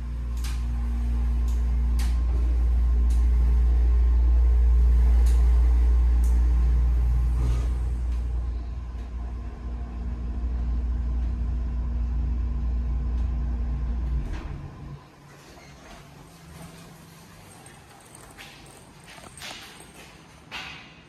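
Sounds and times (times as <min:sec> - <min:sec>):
elevator motor humming: 0:00.0 - 0:19.8.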